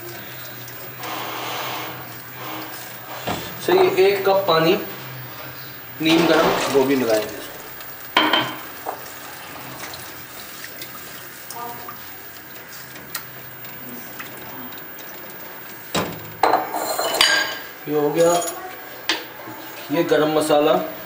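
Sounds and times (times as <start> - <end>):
cookware clatter: 8.2 - 9.0, 16.0 - 19.3.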